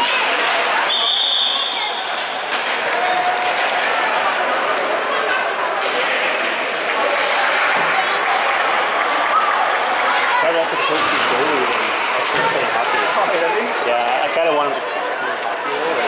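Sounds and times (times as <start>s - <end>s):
chatter of many spectators: 0.0s - 16.0s.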